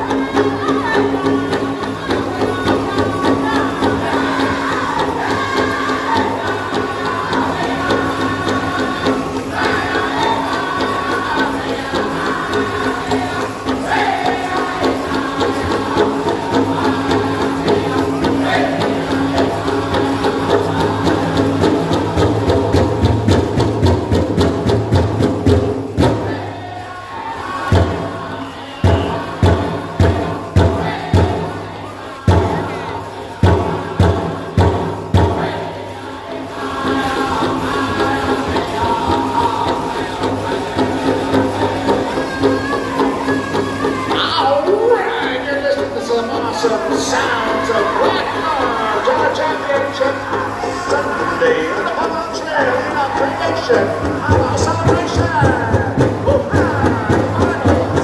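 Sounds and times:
fast steady drumbeat: 0:00.0 - 0:58.0
group singing in high voices: 0:00.0 - 0:58.0.

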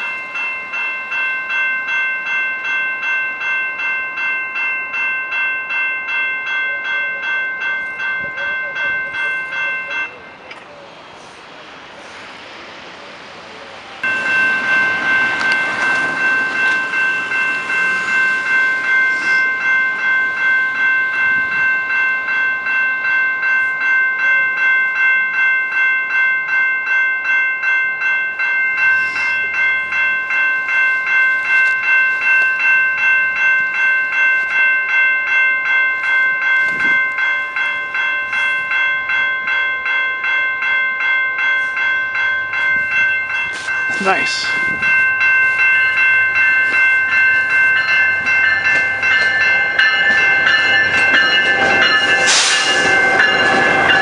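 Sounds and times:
level crossing warning bell ringing: 0:00.0 - 0:54.0.

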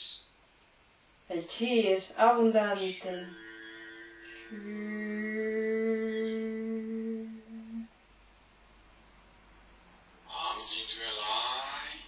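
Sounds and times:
person humming a long note: 0:03.2 - 0:07.9.

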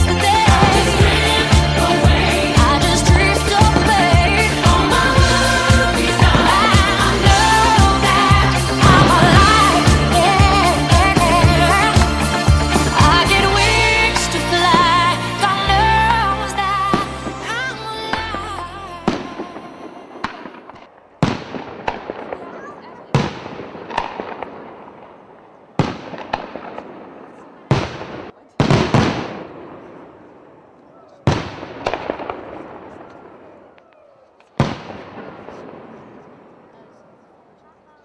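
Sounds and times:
song playing: 0:00.0 - 0:20.2
fireworks bursting: 0:00.0 - 0:37.5.

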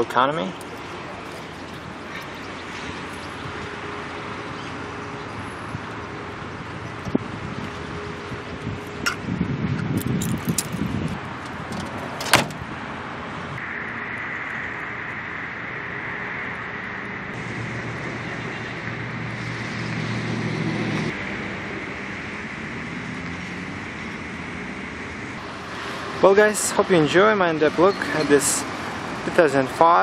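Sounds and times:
vehicle noise with high whine: 0:00.0 - 0:30.0
car door shutting: 0:11.4 - 0:12.7.

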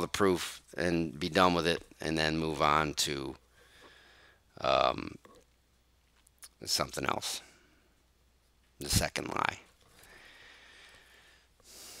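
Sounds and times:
breathing into headset microphone: 0:03.5 - 0:04.5.

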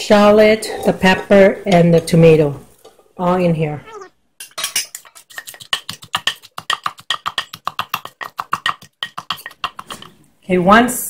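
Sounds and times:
wooden pestle pounding in mortar: 0:05.1 - 0:10.0.

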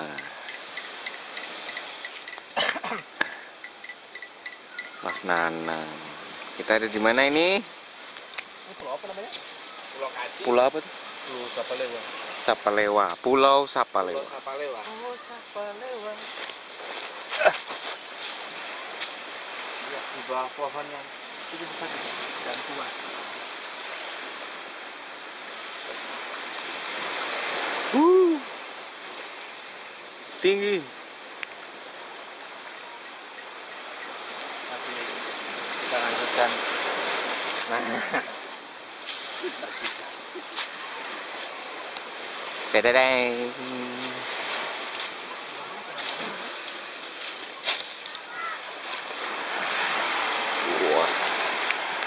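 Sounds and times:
sea surf washing on shore: 0:00.0 - 0:52.0.

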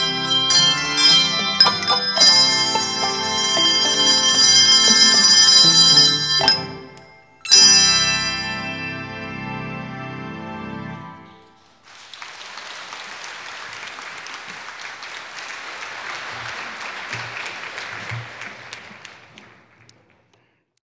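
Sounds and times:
handbell choir final chord: 0:00.0 - 0:09.4
audience applauding: 0:11.6 - 0:20.5.

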